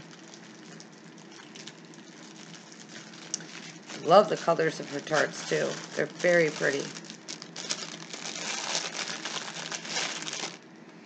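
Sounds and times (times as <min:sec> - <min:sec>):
packaging rustling and crackling: 0:00.0 - 0:10.7.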